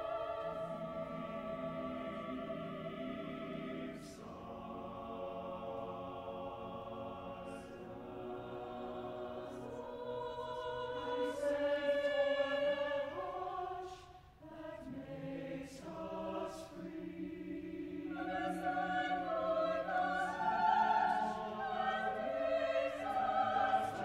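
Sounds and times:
choir singing sustained chords: 0.0s - 24.0s.

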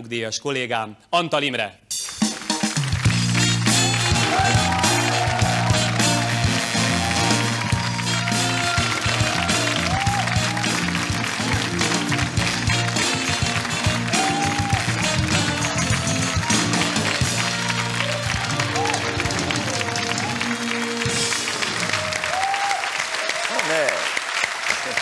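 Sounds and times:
upbeat music with bass line: 1.9s - 21.8s.

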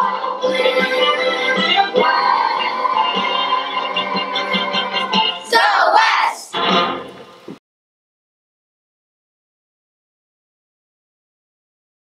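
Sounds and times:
children's chorus singing: 0.0s - 6.8s
recorded backing track: 0.0s - 7.6s.

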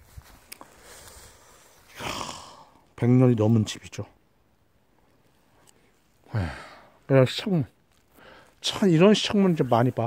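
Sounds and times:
man sighing: 1.9s - 2.8s, 6.2s - 7.0s.

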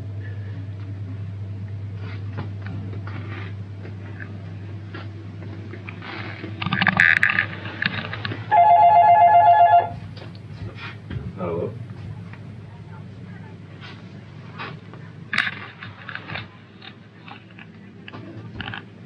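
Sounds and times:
steady low hum: 0.0s - 19.0s
electronic telephone ringing: 8.5s - 10.0s.

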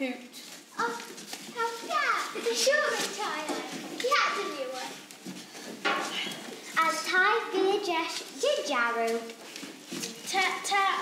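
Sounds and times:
children speaking: 0.7s - 5.1s, 6.0s - 11.0s.

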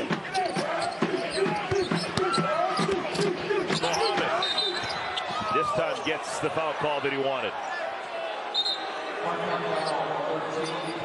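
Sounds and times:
crowd voices: 0.0s - 11.0s
shoe squeaks: 0.4s - 5.4s.

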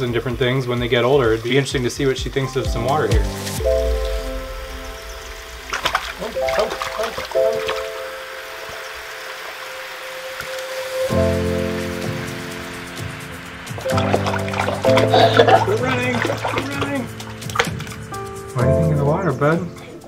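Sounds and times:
background music with held notes: 0.0s - 20.0s
water splashes: 3.2s - 18.6s.

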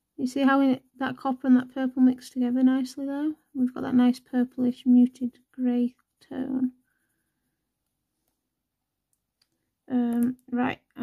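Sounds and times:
woman speaking: 0.2s - 6.7s, 9.9s - 11.0s.

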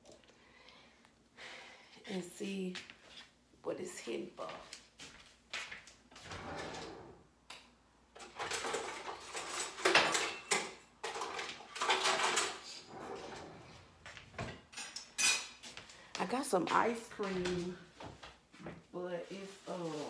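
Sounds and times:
drawer sliding: 6.2s - 7.2s, 11.1s - 14.6s
metal utensils clattering: 8.2s - 13.6s, 14.4s - 15.6s.

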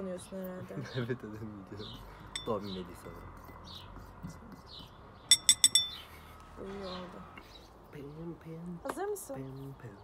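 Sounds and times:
metal spoon tapping glass bowl: 2.3s - 2.6s, 5.3s - 6.0s.

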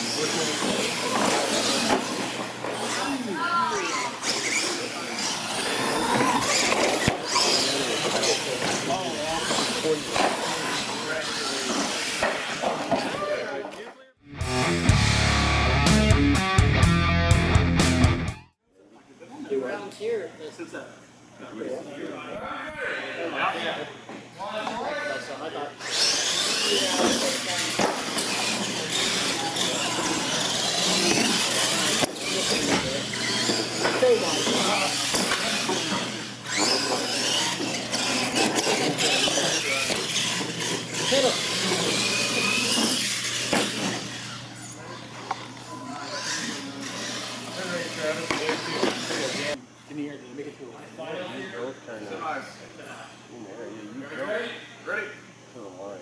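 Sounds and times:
toy truck motors whining: 0.0s - 13.3s, 25.8s - 49.6s
tyres and drivetrains on concrete: 0.0s - 14.2s, 25.8s - 49.6s.

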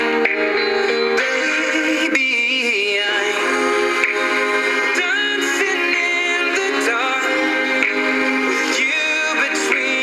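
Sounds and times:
slow voice-like melody: 0.0s - 10.0s.

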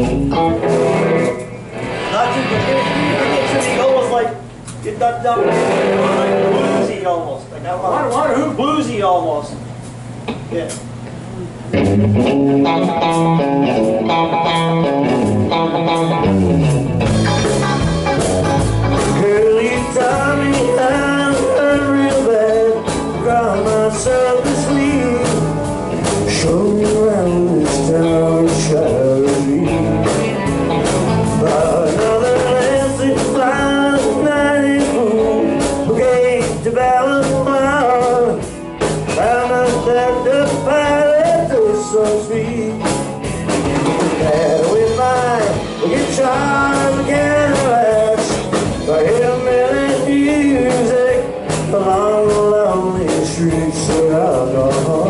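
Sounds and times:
drum kit: 0.0s - 7.2s, 9.8s - 55.0s
electric guitars: 0.0s - 7.4s, 9.9s - 55.0s
electric bass: 0.0s - 55.0s.

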